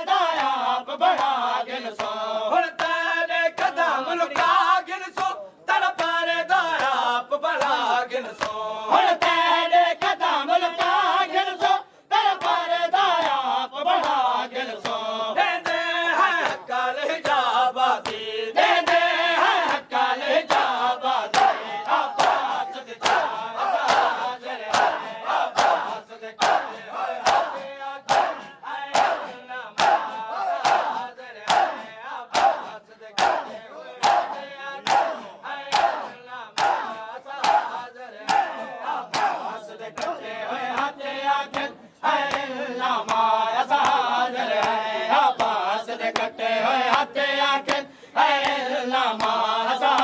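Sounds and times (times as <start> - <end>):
men chanting a lament: 0.0 - 50.0
men beating their chests: 20.4 - 45.6
men calling out: 21.4 - 23.9.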